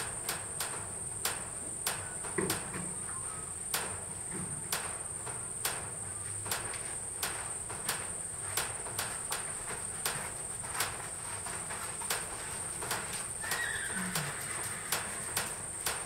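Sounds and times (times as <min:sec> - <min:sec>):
insects droning: 0:00.0 - 0:16.0.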